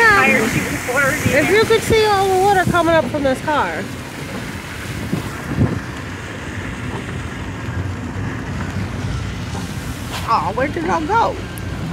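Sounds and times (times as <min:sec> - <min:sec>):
heavy rain: 0:00.0 - 0:11.9
tyres rushing through water: 0:00.0 - 0:11.9
wind noise: 0:00.0 - 0:11.9.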